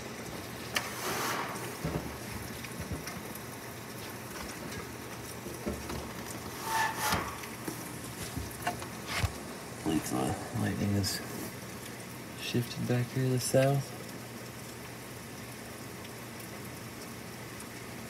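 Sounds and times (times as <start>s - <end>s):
rain hissing: 0.0s - 18.0s.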